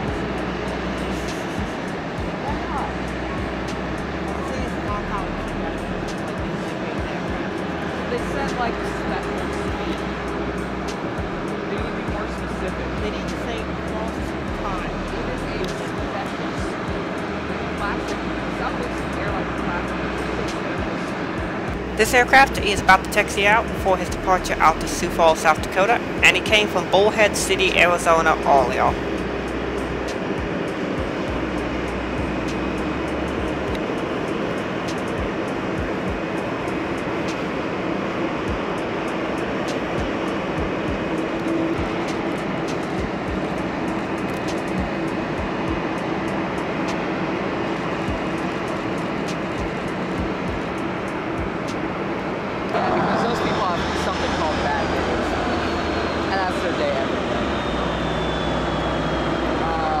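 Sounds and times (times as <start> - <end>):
high jet engine whine: 0.0 - 60.0
jet engines running: 0.0 - 60.0.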